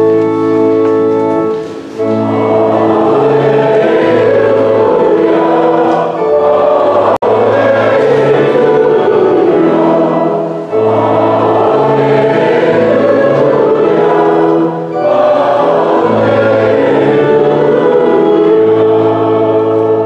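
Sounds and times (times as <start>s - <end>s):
congregation singing: 0.0s - 20.0s
held bass notes: 0.0s - 20.0s.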